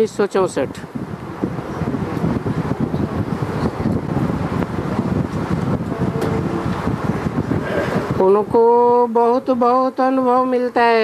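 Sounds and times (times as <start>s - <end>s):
loud rough rumbling noise: 0.7s - 9.2s.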